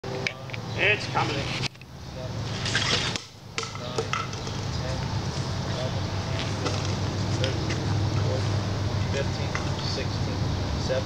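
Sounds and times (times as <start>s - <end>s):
quiet voices: 3.8s - 11.0s.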